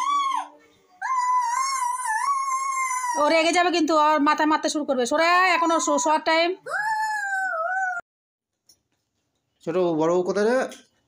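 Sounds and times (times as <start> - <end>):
boy howling high-pitched: 0.0 - 3.2, 6.6 - 8.0.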